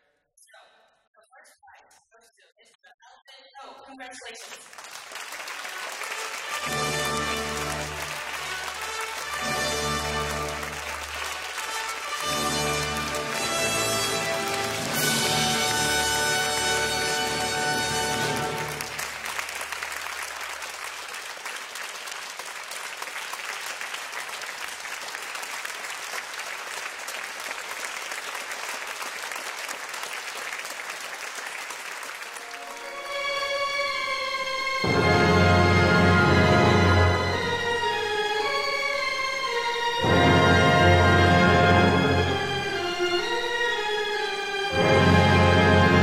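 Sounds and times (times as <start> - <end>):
applause: 3.9 - 34.2
orchestra playing chords: 6.0 - 19.8, 32.2 - 46.0.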